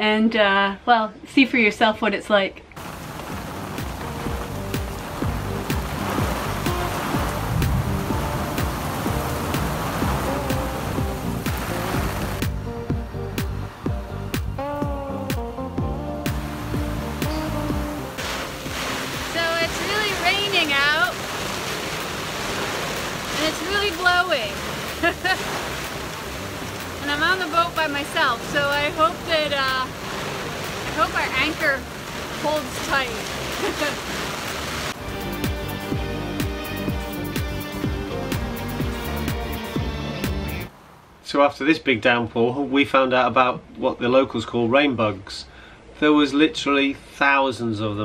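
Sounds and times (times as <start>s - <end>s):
background music: 2.8s - 40.7s
heavy rain hissing on water: 2.8s - 41.4s
person speaking: 23.4s - 24.6s, 27.0s - 29.9s.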